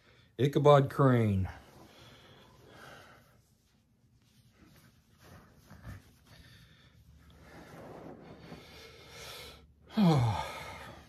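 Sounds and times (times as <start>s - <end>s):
person breathing: 0.0s - 0.4s, 1.6s - 3.8s, 5.2s - 11.0s
blankets and clothing rustling: 0.7s - 9.2s.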